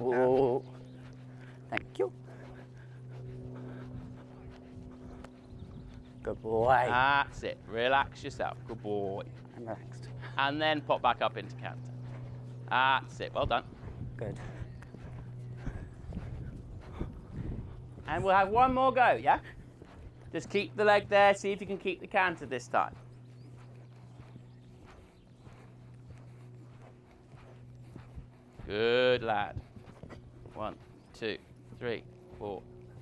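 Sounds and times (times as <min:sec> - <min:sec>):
horse hoofbeats on sand: 0:00.0 - 0:33.0
steady low hum: 0:00.0 - 0:33.0.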